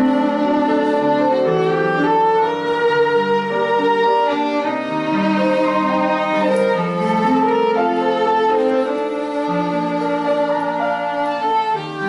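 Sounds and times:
bowed strings with violin melody: 0:00.0 - 0:12.0.

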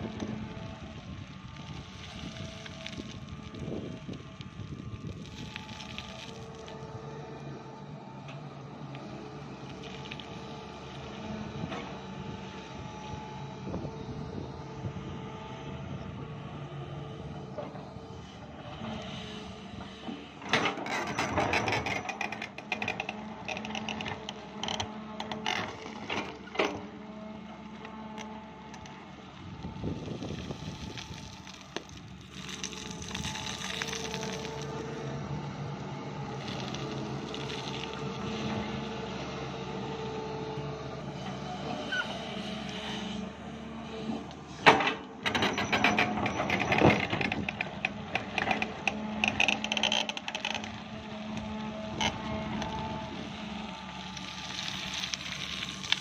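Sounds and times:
excavator engine and hydraulics whine: 0:00.0 - 0:56.0.

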